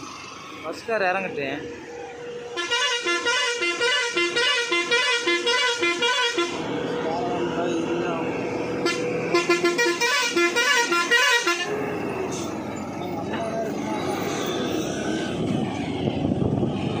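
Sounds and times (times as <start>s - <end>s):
road noise: 0.0s - 17.0s
engine running: 1.4s - 17.0s
vehicle horn pulsed blasts: 2.6s - 6.6s, 8.8s - 11.8s.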